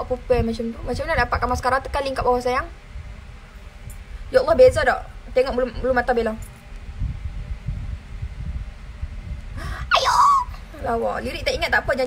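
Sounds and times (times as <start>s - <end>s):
low rumbling noise: 0.0s - 12.0s
woman's sharp vocal sound: 9.6s - 10.6s.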